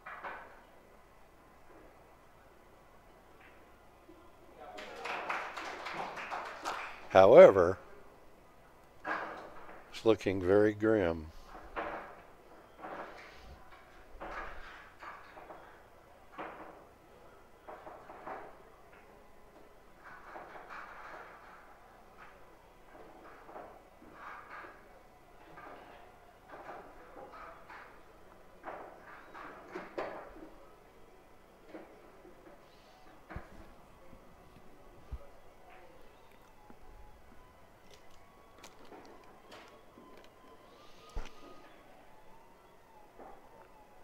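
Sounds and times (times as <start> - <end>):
pool balls being racked: 0.0 - 0.7, 8.9 - 17.0, 17.6 - 19.1, 19.9 - 30.6.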